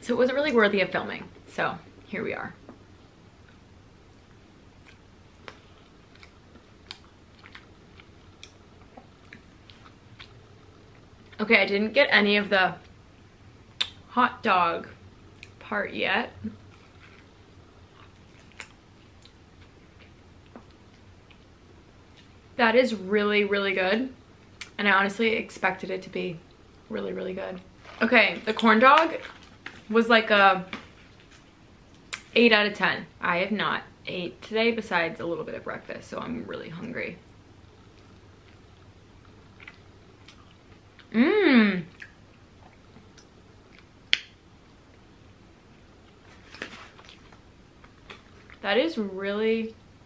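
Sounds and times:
chewing food: 0:04.2 - 0:11.4, 0:17.9 - 0:21.5, 0:37.9 - 0:41.1, 0:46.0 - 0:48.6
sharp snap: 0:44.1 - 0:44.4.

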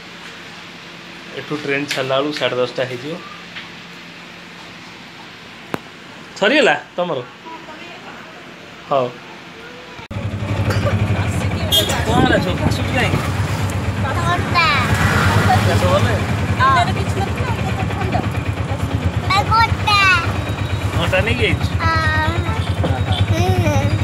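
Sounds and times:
auto-rickshaw engine droning: 0:10.1 - 0:24.0
child's high voice: 0:19.3 - 0:20.4, 0:21.8 - 0:24.0.

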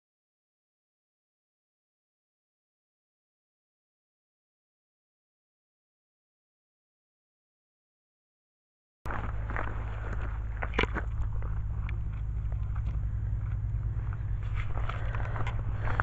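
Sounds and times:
wind rumble on microphone: 0:09.1 - 0:16.0.

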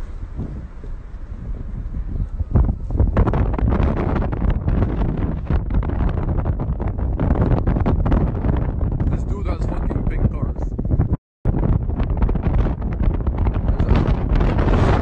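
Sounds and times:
car driving rumble: 0:00.0 - 0:11.1
wind buffeting microphone: 0:00.0 - 0:15.0.

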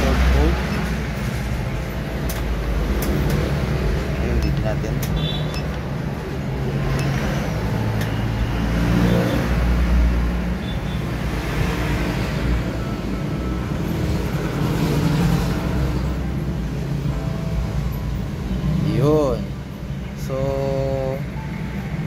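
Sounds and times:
vehicle engine rumbling: 0:00.0 - 0:20.2.

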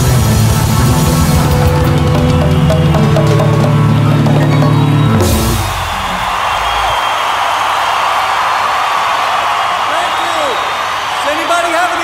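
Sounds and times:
rock band playing: 0:00.0 - 0:06.9
crowd cheering and applauding: 0:00.0 - 0:12.0.

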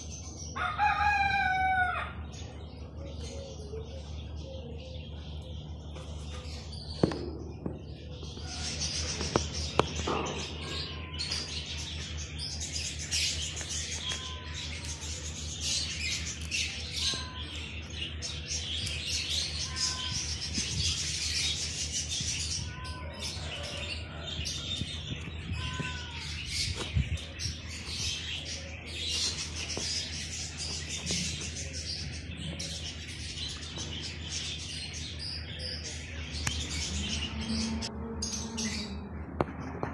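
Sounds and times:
small birds chirping: 0:00.0 - 0:39.9.

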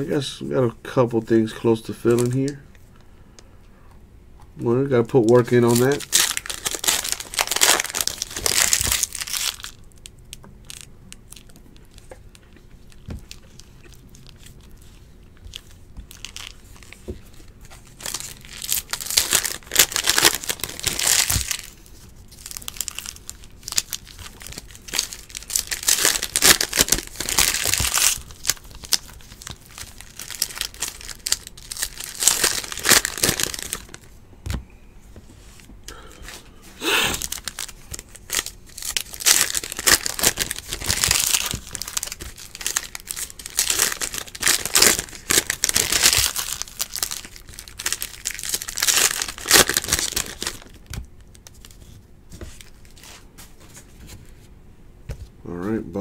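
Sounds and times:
foil wrappers tearing and crinkling: 0:05.2 - 0:12.0, 0:15.5 - 0:17.0, 0:17.7 - 0:34.1, 0:37.0 - 0:51.8.

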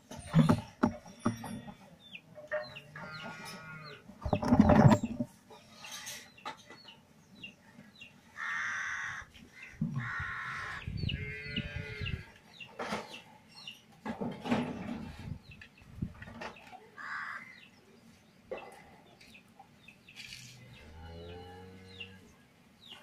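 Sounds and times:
chickens clucking: 0:00.1 - 0:08.1
small birds chirping: 0:09.5 - 0:13.9.

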